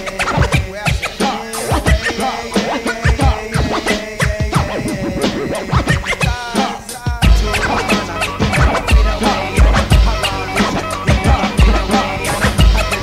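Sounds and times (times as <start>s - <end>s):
hip-hop beat: 0.0s - 13.0s
turntable scratching: 0.0s - 13.0s
deep bass: 7.2s - 13.0s.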